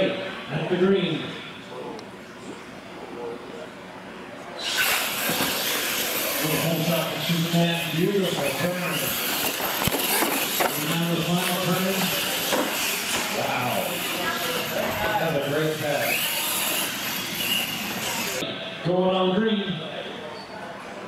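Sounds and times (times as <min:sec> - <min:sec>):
people talking and calling out: 0:00.0 - 0:21.0.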